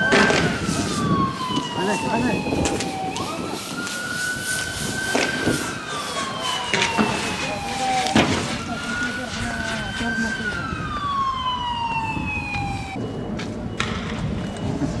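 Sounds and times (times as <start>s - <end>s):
police siren wailing: 0.0s - 15.0s.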